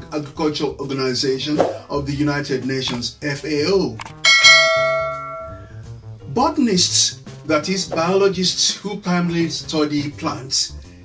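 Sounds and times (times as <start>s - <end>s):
bright bell chime: 4.3s - 5.7s.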